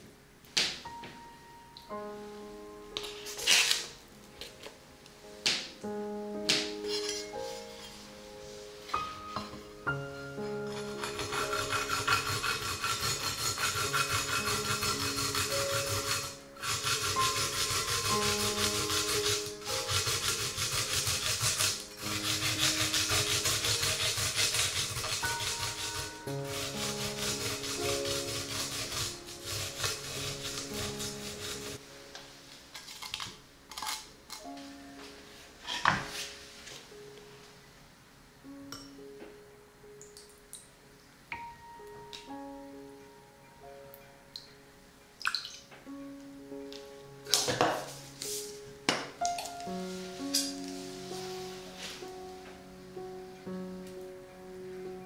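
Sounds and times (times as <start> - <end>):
garlic grated on metal grater: 10.7 - 31.8.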